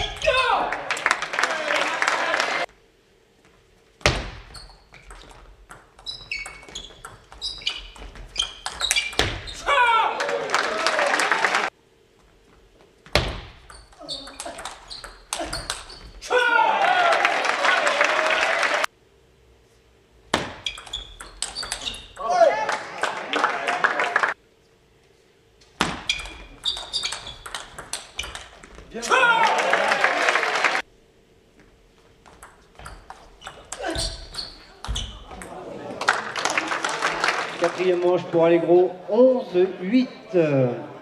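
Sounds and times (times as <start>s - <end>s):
crowd shouting: 0.1s - 2.7s, 9.6s - 11.7s, 16.2s - 18.9s, 22.2s - 24.4s, 29.0s - 30.8s
crowd applause: 0.5s - 2.7s, 10.0s - 11.7s, 16.6s - 18.9s, 22.4s - 24.4s, 29.1s - 30.8s, 35.5s - 38.4s
table tennis ball clicking: 26.3s - 28.6s.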